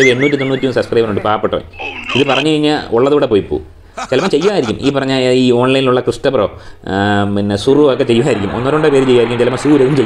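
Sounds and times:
warbling tone: 0.0s - 2.4s
person talking: 0.0s - 2.6s, 4.0s - 5.1s.

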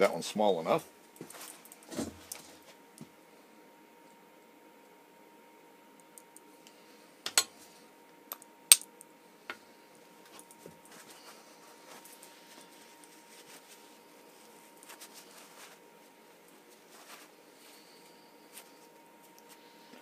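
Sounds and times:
pliers clicking on metal: 8.3s - 8.9s
handling rustle: 10.3s - 19.7s.

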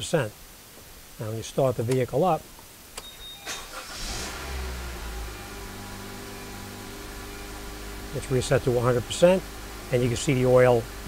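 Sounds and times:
car engine starting and idling: 3.1s - 11.0s.

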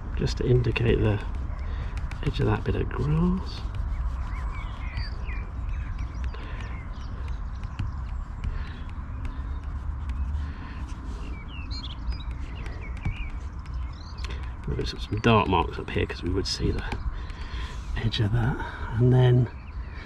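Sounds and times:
small birds chirping: 0.0s - 20.0s
wind buffeting microphone: 0.0s - 20.0s
pencil scratching on paper: 0.2s - 14.5s.

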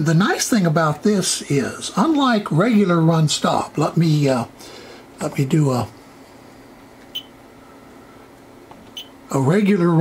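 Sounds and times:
low steady hum: 0.0s - 10.0s
high key-press beeps: 7.1s - 7.4s, 8.9s - 9.2s.

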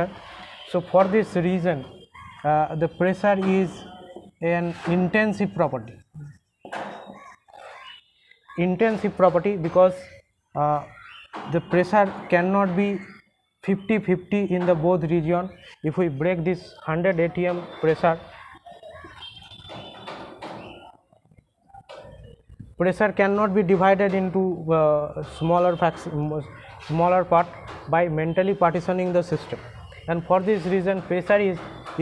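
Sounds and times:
marker writing on whiteboard: 3.0s - 6.0s, 17.0s - 22.2s, 25.2s - 32.0s
marker scratching on whiteboard: 4.5s - 5.5s.

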